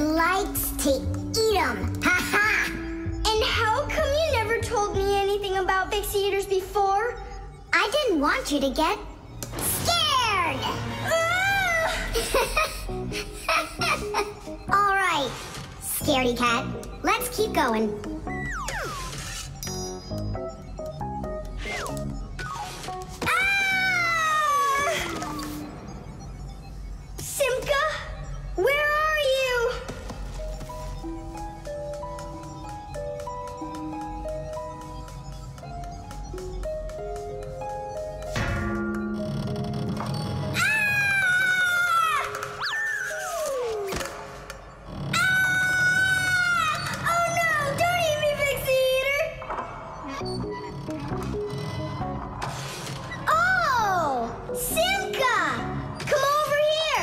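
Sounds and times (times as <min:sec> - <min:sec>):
cartoon background music: 0:00.0 - 0:57.0.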